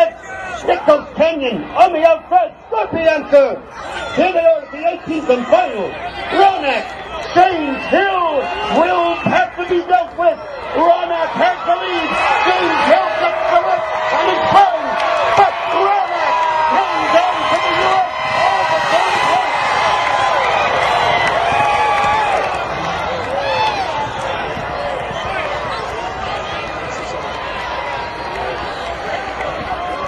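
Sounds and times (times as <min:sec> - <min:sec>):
crowd cheering and shouting: 0:00.0 - 0:30.0.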